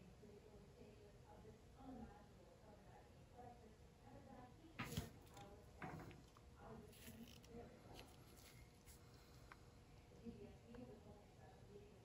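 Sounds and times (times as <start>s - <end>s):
soft taps on plastic tray: 4.8s - 6.3s.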